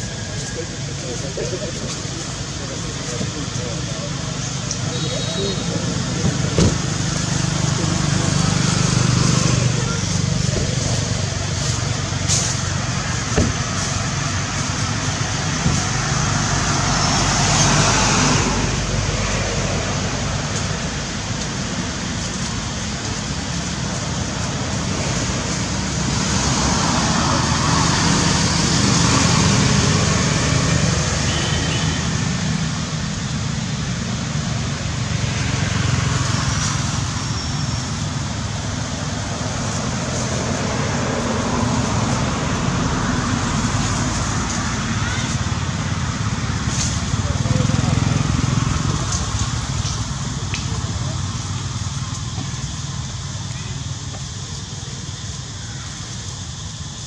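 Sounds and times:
road traffic hum: 0.0 - 57.0
vehicles passing: 0.0 - 57.0.

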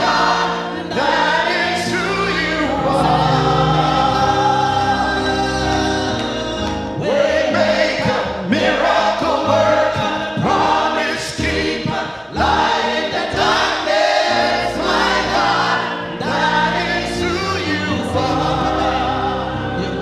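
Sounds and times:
choir singing worship chorus: 0.0 - 20.0.

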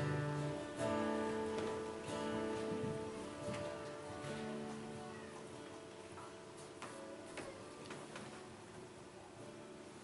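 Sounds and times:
acoustic guitar ringing: 0.0 - 7.8.

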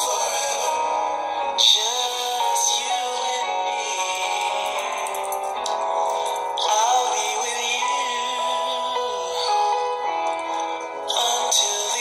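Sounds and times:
backing music: 0.0 - 12.0
man singing: 0.0 - 12.0.

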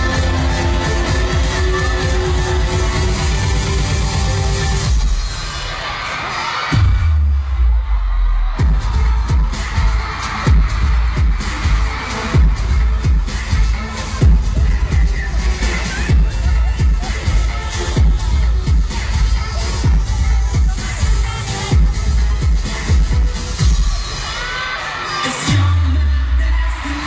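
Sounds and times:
heavy electronic beat with bass: 0.0 - 27.0
pop music over sound system: 0.0 - 27.0.

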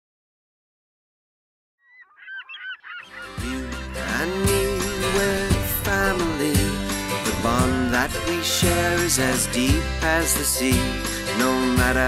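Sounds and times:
quick overlapping bird calls: 1.8 - 4.0
intro music with bass line: 3.4 - 12.0.

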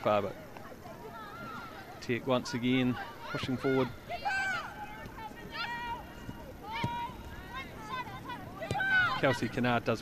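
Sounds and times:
women shouting high calls: 3.0 - 9.3.

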